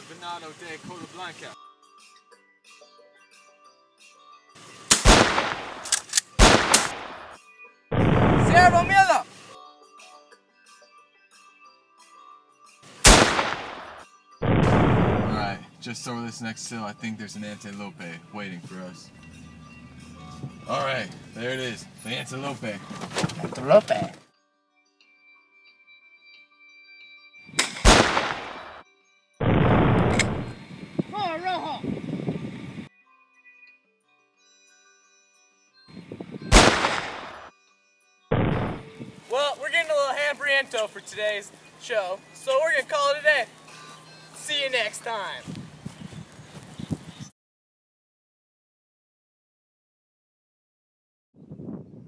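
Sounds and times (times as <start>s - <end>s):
rifle shot with echo: 4.9s - 7.4s, 8.0s - 8.9s, 13.1s - 15.6s, 27.6s - 28.8s, 29.4s - 30.6s, 36.5s - 37.5s, 38.3s - 38.8s
loud gunshot: 4.9s - 8.9s, 13.0s - 15.6s, 27.6s - 28.8s, 29.4s - 30.6s, 36.5s - 37.5s, 38.3s - 38.8s.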